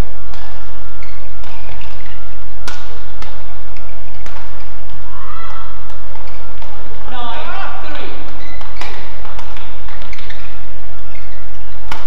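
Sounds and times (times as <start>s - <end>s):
rackets hitting shuttlecock: 0.0s - 12.0s.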